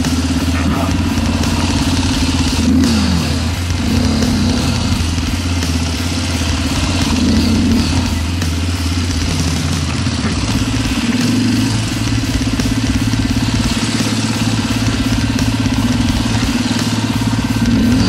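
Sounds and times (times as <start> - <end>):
dirt bike engine running: 0.0 - 18.0.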